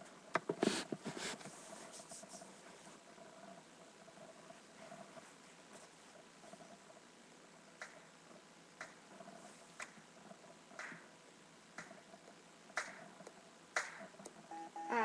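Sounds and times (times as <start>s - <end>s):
faint low backing music: 0.0s - 15.0s
clap-like click beat: 7.8s - 8.1s, 8.8s - 9.0s, 9.8s - 10.0s, 10.8s - 11.1s, 11.7s - 12.0s, 12.7s - 14.4s
girl singing: 14.5s - 15.0s.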